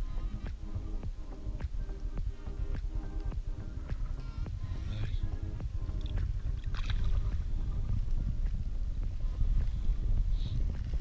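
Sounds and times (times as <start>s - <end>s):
steady low rumble: 0.0s - 11.0s
shallow water sloshing: 6.0s - 7.8s.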